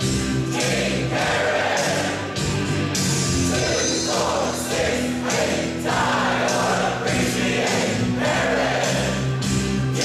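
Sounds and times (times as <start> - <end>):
musical backing: 0.0 - 10.0
choir singing: 0.4 - 2.4, 3.4 - 10.0.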